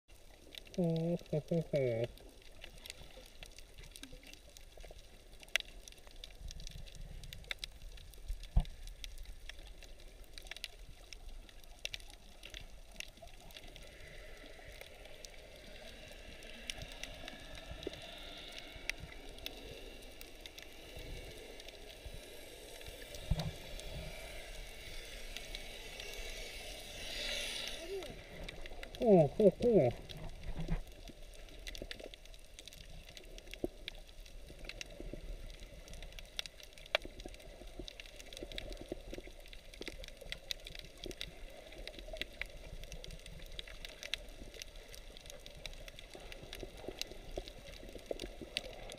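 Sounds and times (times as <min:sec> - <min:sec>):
low water hiss: 0:00.1 - 0:48.9
underwater clicks and crackles: 0:00.1 - 0:48.9.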